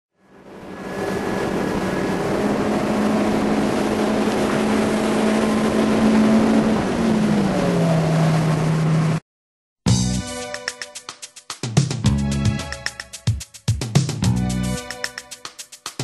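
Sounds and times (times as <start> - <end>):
motorboat engine running: 1.1 - 9.2.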